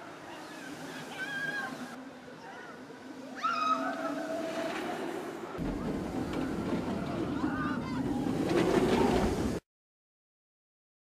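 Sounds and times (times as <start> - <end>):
high gliding voice-like calls: 0.0 - 5.4
roller coaster train rumbling: 3.4 - 9.6.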